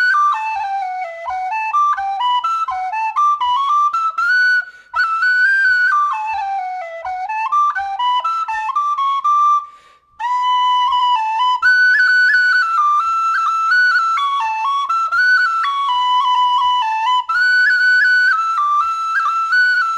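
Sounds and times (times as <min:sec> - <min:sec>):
tin whistle playing a jig: 0:00.0 - 0:19.9.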